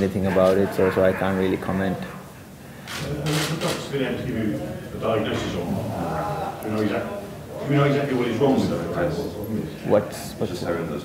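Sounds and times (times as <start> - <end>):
man asking a question: 0.0 - 11.0.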